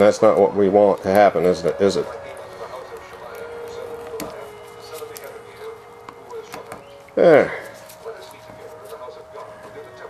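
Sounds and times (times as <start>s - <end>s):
faint steady hum: 0.0s - 10.0s
foil seal clicking and crinkling: 0.1s - 7.0s.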